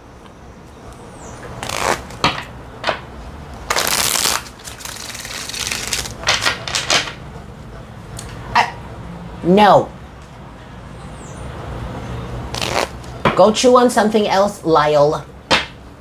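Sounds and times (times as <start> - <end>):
cards riffle shuffle: 3.7 - 6.9
cards rustling: 3.7 - 7.0.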